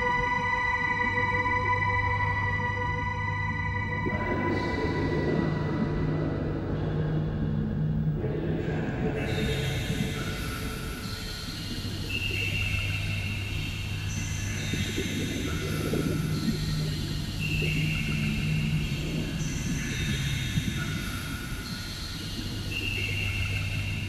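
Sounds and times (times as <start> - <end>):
low rumbling texture: 3.8 - 10.3.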